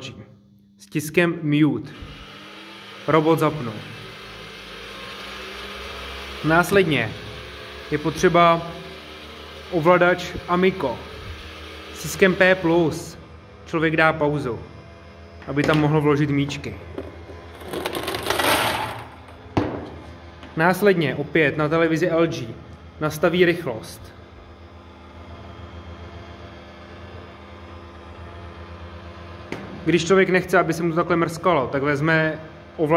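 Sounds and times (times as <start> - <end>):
table tennis robot motors humming: 2.0 - 32.9
balls rattling into plastic hopper: 17.0 - 19.4.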